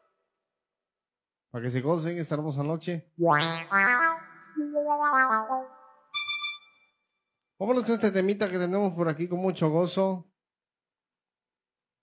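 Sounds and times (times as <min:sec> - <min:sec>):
keyboard playing brass-like notes: 0:03.4 - 0:06.7.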